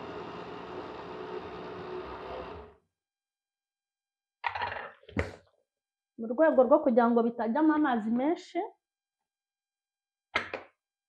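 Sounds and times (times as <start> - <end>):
blender motor whirring: 0.0 - 2.8.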